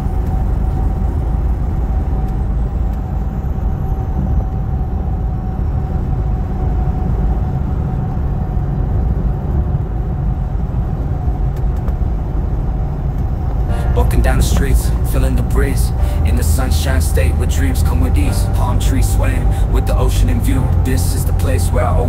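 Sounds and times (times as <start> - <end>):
truck cab road and engine rumble: 0.0 - 22.0.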